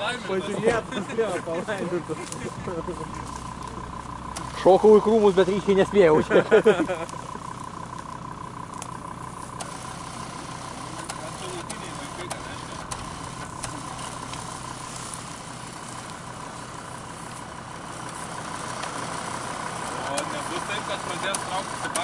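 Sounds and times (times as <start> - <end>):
faint voices: 0.0 - 6.3, 10.3 - 22.0
car engine idling: 0.0 - 22.0.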